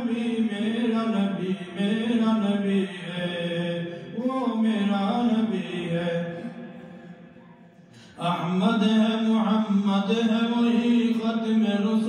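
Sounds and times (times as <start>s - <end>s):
man chanting unaccompanied: 0.0s - 6.6s, 8.2s - 12.0s.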